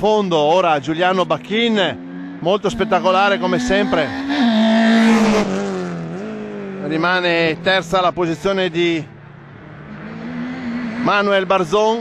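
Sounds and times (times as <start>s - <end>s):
racing car passing at speed: 1.3s - 12.0s.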